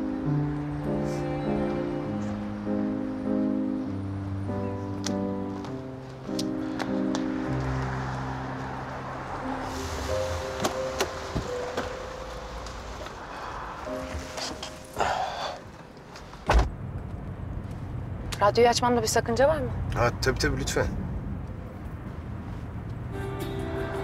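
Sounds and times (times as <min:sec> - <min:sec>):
soft background music: 0:00.0 - 0:15.6
car door shutting: 0:09.8 - 0:13.2, 0:16.4 - 0:16.8.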